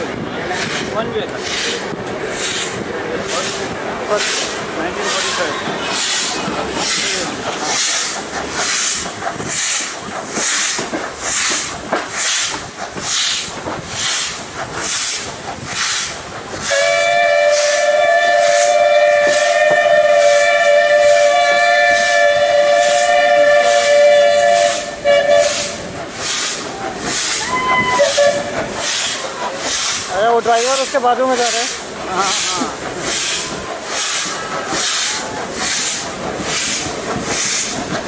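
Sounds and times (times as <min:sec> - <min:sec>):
steam locomotive exhaust chuffing: 0:00.0 - 0:38.0
two-note steam whistle: 0:16.7 - 0:25.8, 0:27.4 - 0:28.6.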